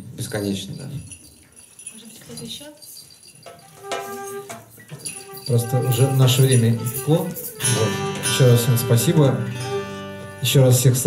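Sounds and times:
hand percussion jingling: 0.0s - 10.5s
held instrument note: 3.6s - 11.0s.

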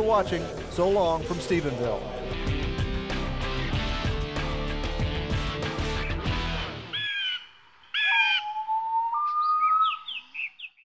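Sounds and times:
bird calls: 6.9s - 10.9s
long whistled bird note: 8.0s - 10.3s.

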